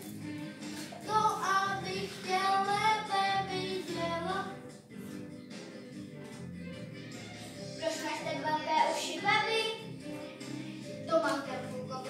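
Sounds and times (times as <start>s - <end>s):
instrumental accompaniment: 0.0s - 11.7s.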